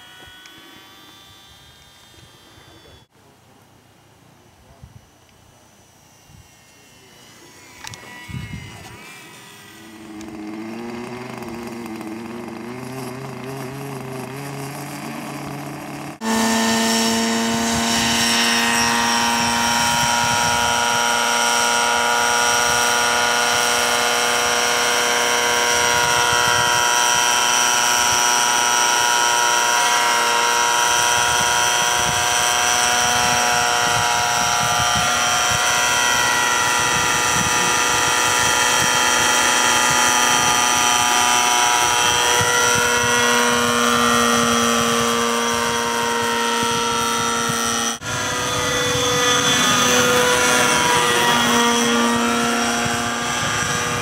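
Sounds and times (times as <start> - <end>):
faint wavering motor hum: 0.0 - 54.0
model helicopter whine: 0.0 - 54.0.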